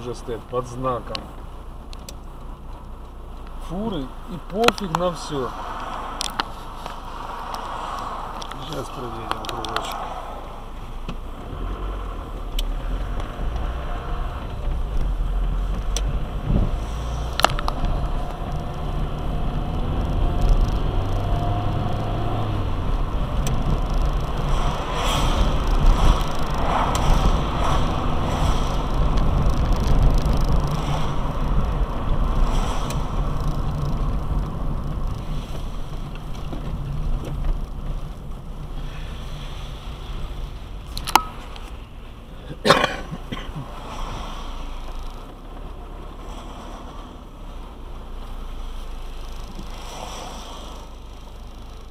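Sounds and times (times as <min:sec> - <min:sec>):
car engine and road rumble: 0:00.0 - 0:51.9
tyre noise on wet road: 0:00.0 - 0:51.9.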